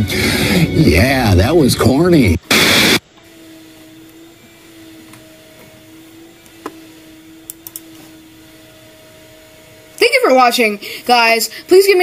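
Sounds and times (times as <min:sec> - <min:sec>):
mechanical hum: 0:00.0 - 0:12.0.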